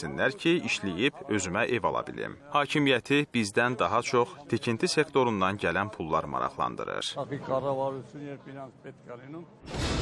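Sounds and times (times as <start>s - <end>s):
man speaking: 0.0s - 9.5s.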